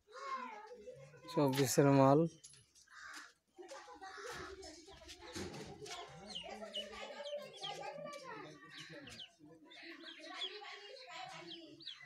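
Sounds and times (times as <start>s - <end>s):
faint voices: 3.6s - 12.0s.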